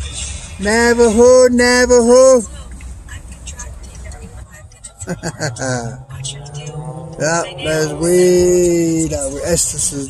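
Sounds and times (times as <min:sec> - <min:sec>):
faint voices: 0:00.0 - 0:10.0
road traffic rumble: 0:00.0 - 0:10.0.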